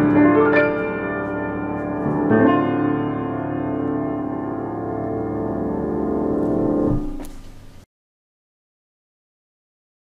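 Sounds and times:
piano chord ringing: 0:00.0 - 0:07.8.

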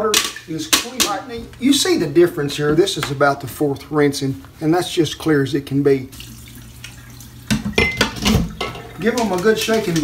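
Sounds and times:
water pouring into sink: 0:06.1 - 0:10.0.

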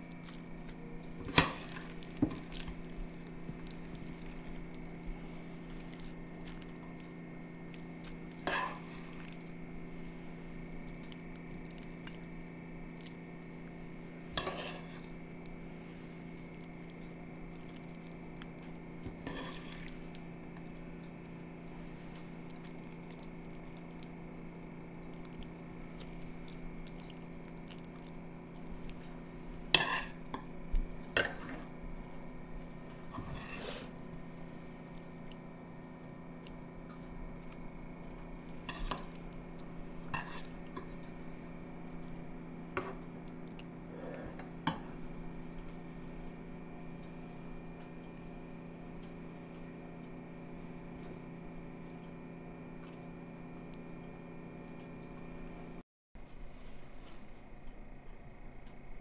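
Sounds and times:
steady low hum: 0:00.0 - 0:59.0
spoon scraping ceramic plate: 0:14.4 - 0:15.0, 0:33.2 - 0:33.7.

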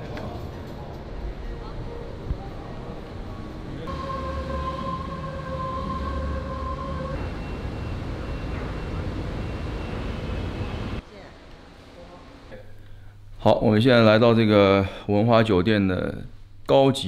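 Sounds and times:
city traffic hum: 0:00.0 - 0:11.0
high whine from vehicle: 0:03.8 - 0:11.0.

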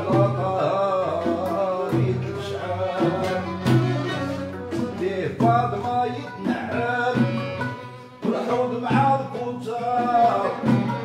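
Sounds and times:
bowed violins: 0:00.0 - 0:11.0
oud and plucked lute: 0:00.0 - 0:11.0.

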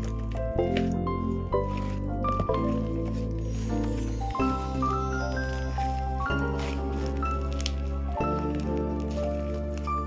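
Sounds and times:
slime squishing being kneaded: 0:00.0 - 0:10.0.

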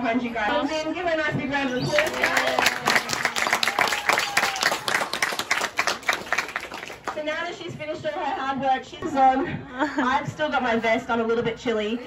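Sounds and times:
audience clapping: 0:01.8 - 0:07.3.

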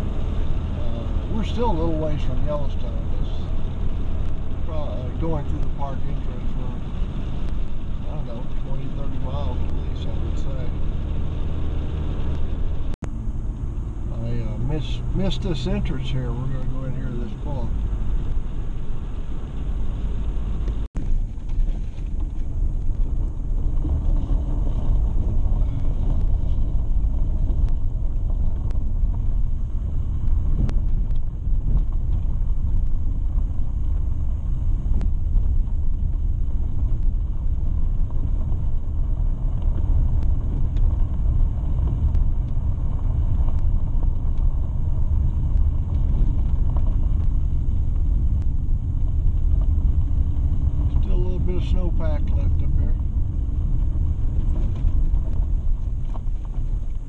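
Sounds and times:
vehicle driving on gravel: 0:00.0 - 0:57.0
faint knocks from rough road: 0:20.6 - 0:34.2, 0:52.4 - 0:57.0.

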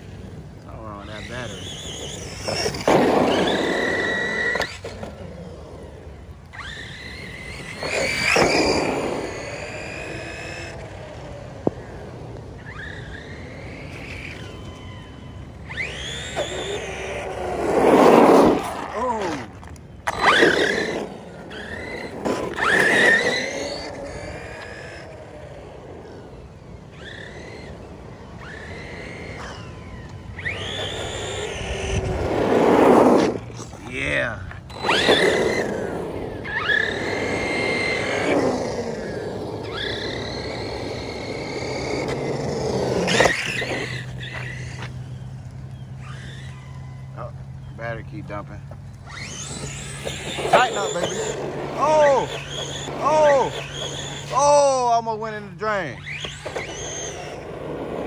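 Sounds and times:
electric motor whining: 0:00.0 - 0:58.0.

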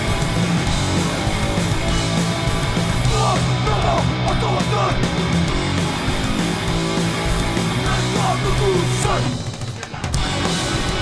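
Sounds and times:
punk band playing: 0:00.0 - 0:11.0.

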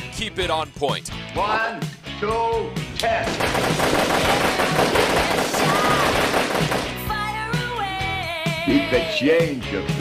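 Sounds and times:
rapid machine-gun fire: 0:03.3 - 0:07.0.

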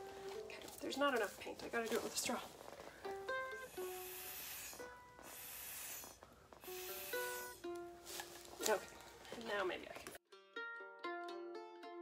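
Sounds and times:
plucked ukulele music: 0:00.0 - 0:01.4, 0:02.6 - 0:04.1, 0:06.8 - 0:12.0
breath blown through a straw: 0:03.4 - 0:07.7.

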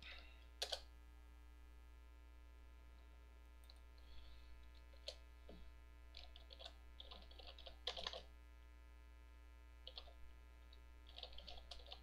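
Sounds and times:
low mains hum: 0:00.0 - 0:12.0.

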